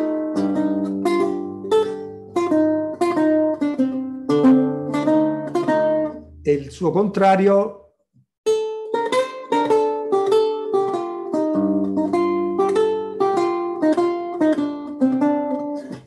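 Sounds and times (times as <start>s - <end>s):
held lute bass notes: 0.0s - 7.8s, 8.5s - 16.0s
lute plucked notes: 0.0s - 7.8s, 8.5s - 16.0s.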